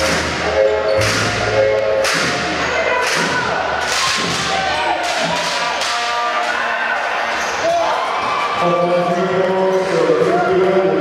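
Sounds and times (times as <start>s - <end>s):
crowd voices in a hall: 0.0s - 11.0s.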